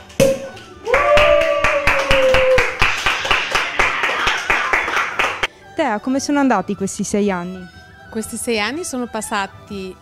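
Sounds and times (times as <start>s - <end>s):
people clapping: 0.0s - 5.5s
cork popping: 0.2s - 0.7s
person cheering: 0.8s - 2.8s.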